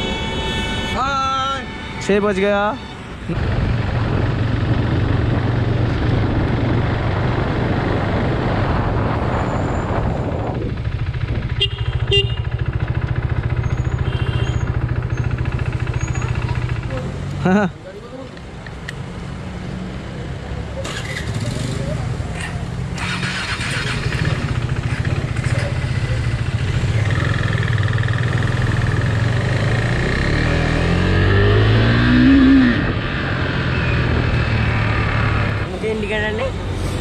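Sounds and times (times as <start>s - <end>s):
wind noise on microphone: 3.2s - 11.7s
motorcycle engine accelerating: 3.3s - 17.3s, 20.8s - 35.7s.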